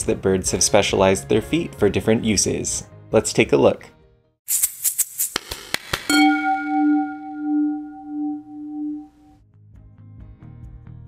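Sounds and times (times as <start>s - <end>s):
bell-like chime ringing: 6.1s - 9.4s.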